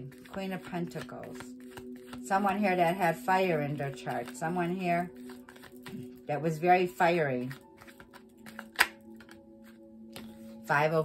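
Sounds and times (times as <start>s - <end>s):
cards being shuffled: 0.0s - 10.6s
soft background music: 0.0s - 11.0s
card snap: 7.5s - 10.3s.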